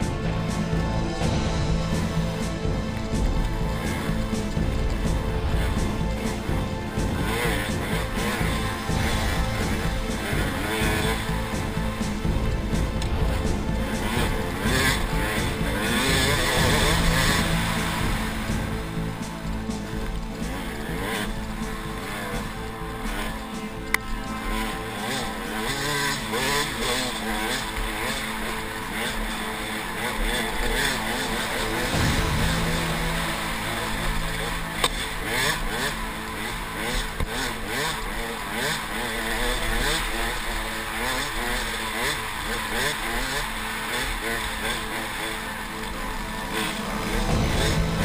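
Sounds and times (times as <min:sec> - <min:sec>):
dirt bike engine revving: 0:00.0 - 0:48.0.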